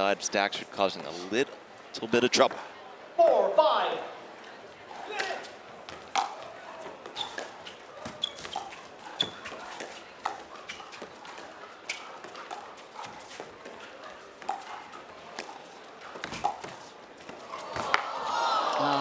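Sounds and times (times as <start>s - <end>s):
paddles hitting plastic ball: 5.2s - 18.1s.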